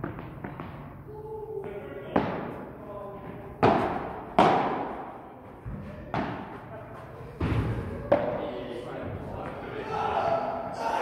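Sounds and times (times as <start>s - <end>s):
ball hitting padel racket: 0.0s - 0.9s, 1.6s - 6.6s.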